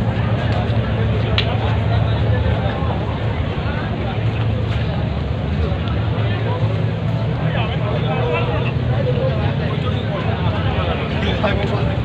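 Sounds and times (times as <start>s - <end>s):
people talking: 0.0s - 12.0s
steady low rumble: 0.0s - 12.0s.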